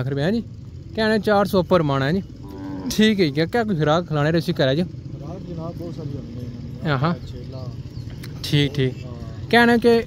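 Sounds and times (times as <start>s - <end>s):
cattle mooing: 2.3s - 3.5s.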